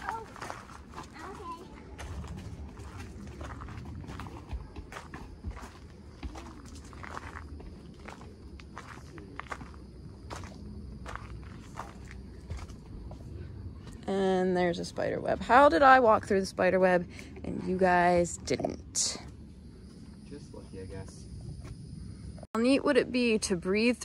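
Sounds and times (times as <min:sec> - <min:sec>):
footsteps on gravel: 0:00.0 - 0:13.4
footsteps on wooden footbridge: 0:00.0 - 0:14.0.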